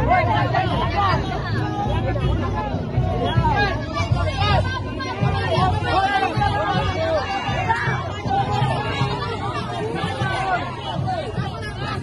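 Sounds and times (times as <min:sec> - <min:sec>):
crowd calling and shouting: 0:00.0 - 0:12.0.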